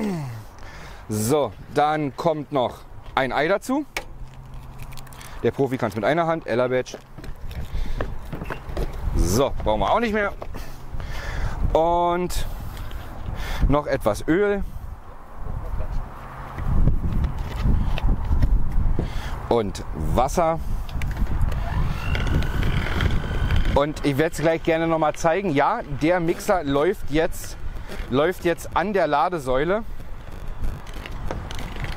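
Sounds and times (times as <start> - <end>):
electric hand mixer whining: 21.5 - 24.0.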